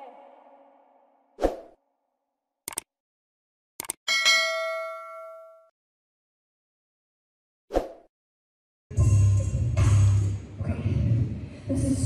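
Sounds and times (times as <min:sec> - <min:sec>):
notification bell ding: 0:04.1 - 0:05.7.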